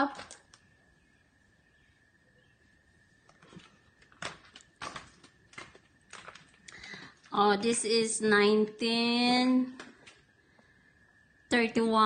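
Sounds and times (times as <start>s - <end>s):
footsteps on gritty concrete: 3.3s - 7.9s.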